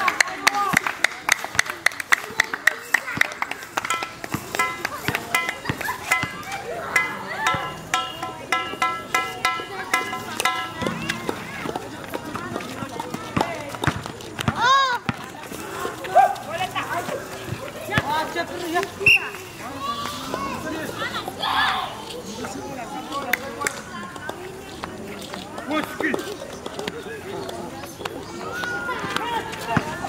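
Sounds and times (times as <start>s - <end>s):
players clapping hands: 0.0s - 5.9s
players' voices: 0.0s - 30.0s
basketball bouncing on concrete: 3.0s - 15.5s, 17.5s - 18.3s.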